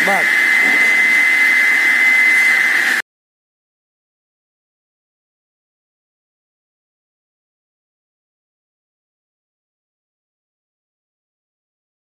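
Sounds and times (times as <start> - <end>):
saw blade high-pitched whine: 0.0 - 3.0.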